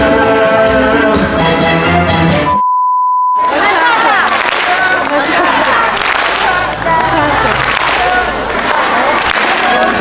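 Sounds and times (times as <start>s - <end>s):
stage show music: 0.0s - 2.6s, 3.4s - 10.0s
electronic bleep: 2.5s - 3.4s
crowd noise and voices: 3.4s - 10.0s.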